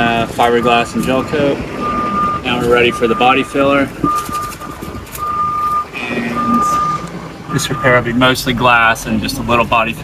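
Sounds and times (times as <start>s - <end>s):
electronic beeper pulses: 1.8s - 8.0s.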